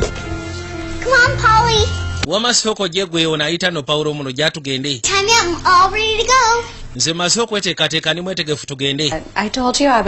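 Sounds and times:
girl singing: 1.0s - 2.0s, 5.1s - 6.7s.

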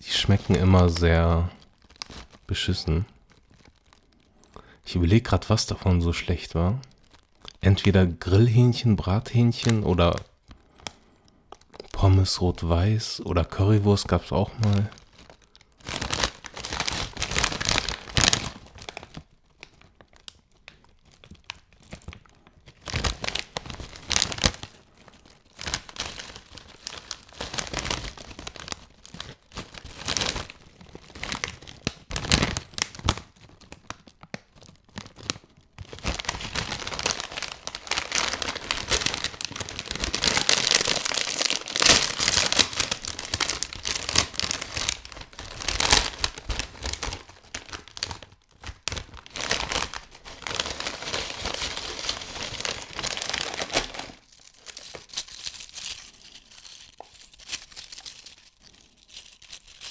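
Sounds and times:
plastic foil bag crinkling: 0.0s - 59.9s
foil bag tearing open: 14.2s - 59.9s.

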